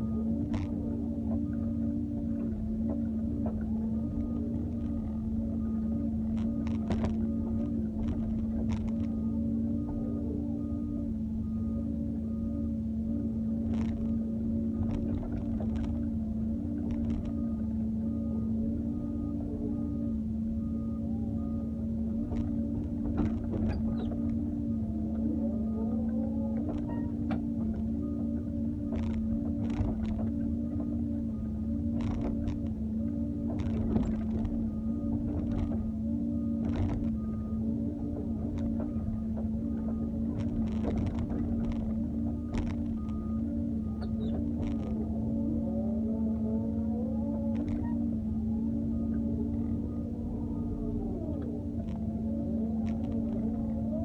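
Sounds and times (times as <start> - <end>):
excavator engine drone: 0.0 - 54.0
hydraulics whining: 0.0 - 54.0.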